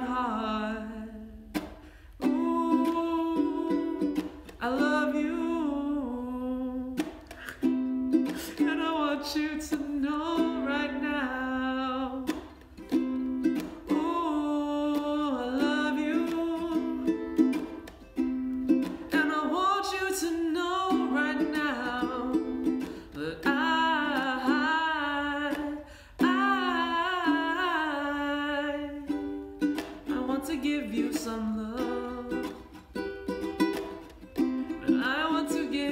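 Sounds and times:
ukulele strummed in chords: 0.0s - 35.9s
man singing: 2.2s - 7.0s, 8.2s - 12.4s, 13.9s - 17.7s, 19.1s - 29.4s, 30.0s - 32.7s, 34.6s - 35.9s.

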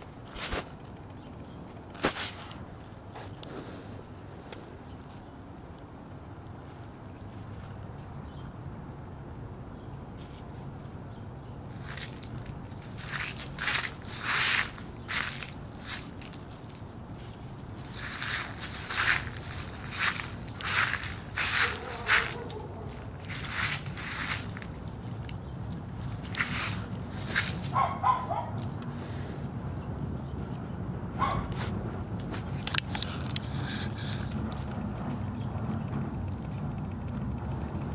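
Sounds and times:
footsteps crunching dry leaves: 11.7s - 29.3s.

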